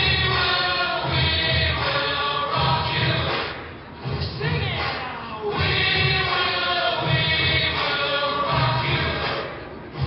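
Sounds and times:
voices singing over beat: 0:00.0 - 0:10.0.

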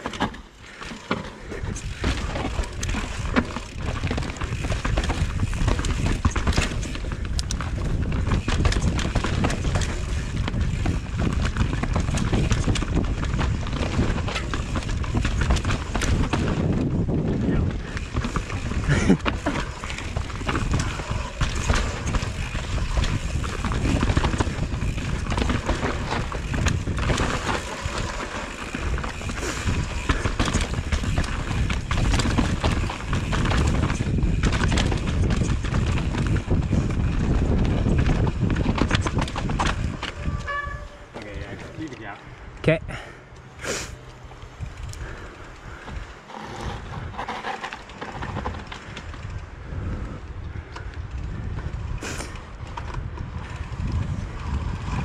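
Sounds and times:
bike tyres rumbling over dirt: 0:00.0 - 0:42.2, 0:44.2 - 0:55.0
bike knocking and rattling: 0:00.0 - 0:55.0.

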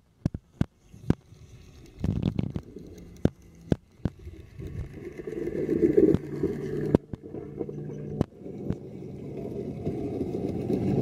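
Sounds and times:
rumbling water: 0:00.1 - 0:11.0
pool cleaner motor hum: 0:01.2 - 0:11.0.

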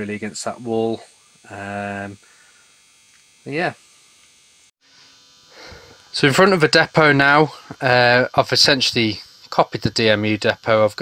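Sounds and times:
electrical hum and buzz: 0:00.0 - 0:11.0.

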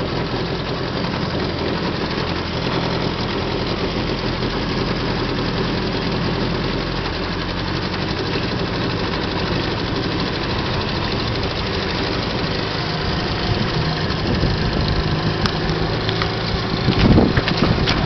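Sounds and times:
outboard motor running: 0:00.0 - 0:18.0.

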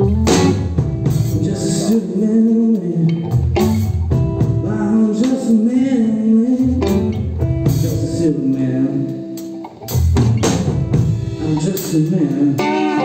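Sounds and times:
bass guitar: 0:00.0 - 0:13.0
drum kit playing: 0:00.0 - 0:13.0
electric guitar: 0:00.0 - 0:13.0.

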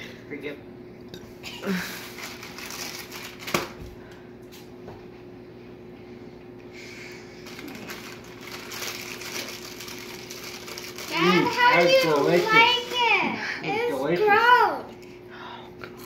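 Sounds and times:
faint steady hum: 0:00.0 - 0:16.0
cracker being chewed: 0:07.4 - 0:11.2.

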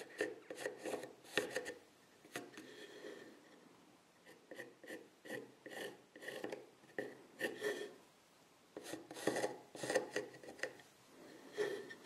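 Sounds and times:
pencil scratching on wood: 0:00.0 - 0:01.8, 0:04.2 - 0:08.0, 0:08.8 - 0:10.8, 0:11.4 - 0:12.0.

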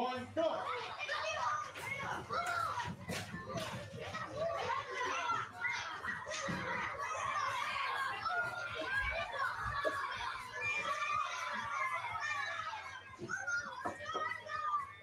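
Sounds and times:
young children talking: 0:00.6 - 0:15.0.

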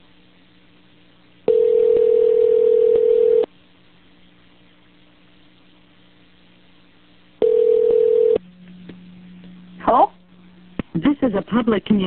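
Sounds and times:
faint phone line hum: 0:01.4 - 0:03.6, 0:07.2 - 0:12.0
telephone ringback tone: 0:01.5 - 0:03.5, 0:07.4 - 0:08.4.

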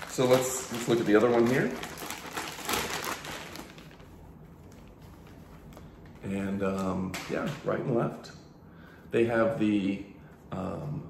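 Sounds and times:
plastic bag crinkling: 0:00.0 - 0:05.9.

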